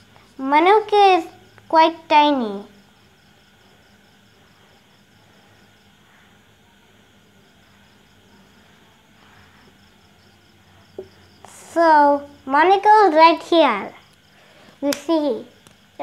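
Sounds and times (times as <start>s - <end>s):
insects chirping: 0.0s - 16.0s
low steady hum: 0.0s - 16.0s.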